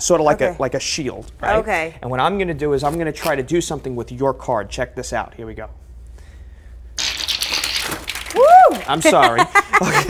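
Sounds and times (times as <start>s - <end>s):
playing cards fluttering: 7.0s - 9.2s.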